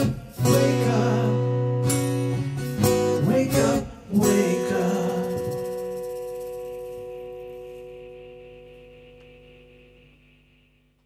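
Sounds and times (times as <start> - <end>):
acoustic guitar chord ringing: 0.0 - 10.9.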